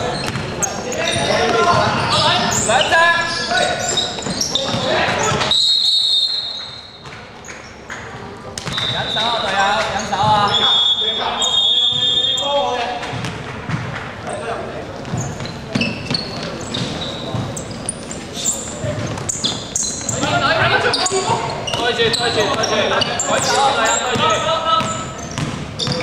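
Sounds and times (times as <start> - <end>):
sneakers squeaking: 0.0 - 26.0
basketball bouncing on hardwood floor: 0.2 - 0.5, 4.2 - 5.5, 13.1 - 14.0, 15.0 - 18.1, 24.1 - 26.0.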